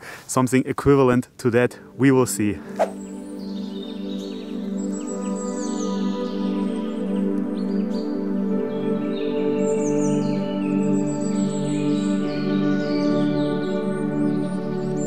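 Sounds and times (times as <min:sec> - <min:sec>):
ambient music with sustained chords: 0:01.7 - 0:15.0.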